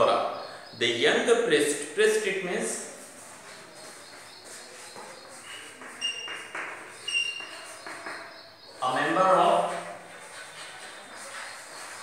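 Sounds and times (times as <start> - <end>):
chalk squeaks: 2.8 - 12.0
chalk scratching on blackboard: 2.9 - 8.2, 9.4 - 12.0.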